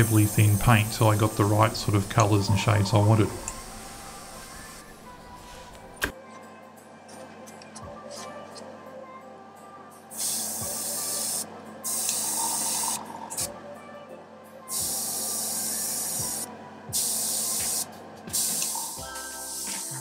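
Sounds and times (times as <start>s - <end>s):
airbrush spraying hiss: 0.0s - 2.4s, 3.0s - 6.0s, 10.2s - 13.5s, 14.7s - 20.0s.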